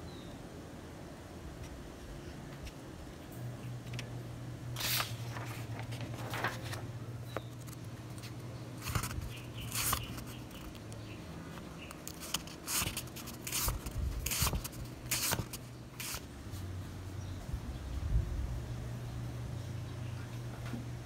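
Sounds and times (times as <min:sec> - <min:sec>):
low steady hum: 0:00.0 - 0:21.0
handling rustles and scrapes: 0:04.8 - 0:10.8, 0:11.5 - 0:16.7.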